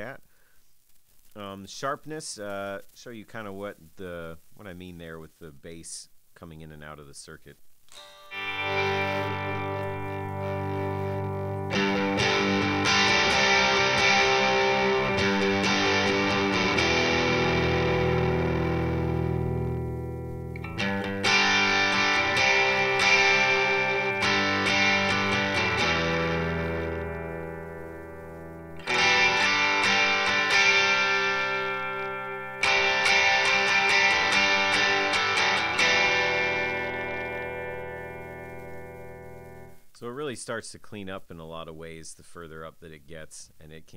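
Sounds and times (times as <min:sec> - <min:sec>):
steady interface hiss: 0:00.0 - 0:43.9
overdriven electric guitar chords: 0:07.9 - 0:39.9.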